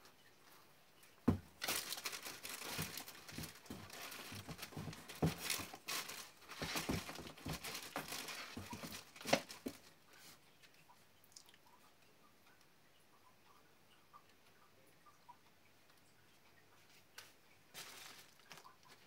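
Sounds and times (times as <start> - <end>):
soft knocks against cardboard: 1.3 - 1.5, 2.7 - 9.8
items packed into cardboard box: 1.3 - 9.9, 17.8 - 19.0.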